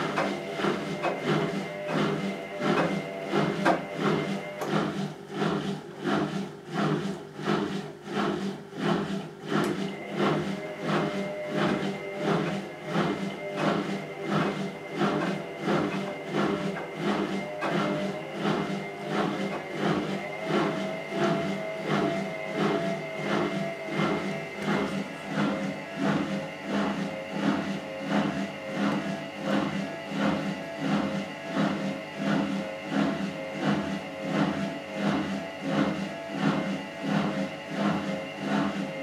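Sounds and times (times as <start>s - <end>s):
washing machine drum motor humming: 0.0s - 39.0s.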